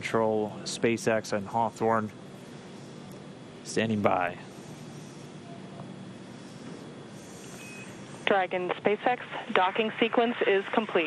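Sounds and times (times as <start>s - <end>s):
radio channel hiss: 6.2s - 11.0s
faint high beep: 7.6s - 8.0s.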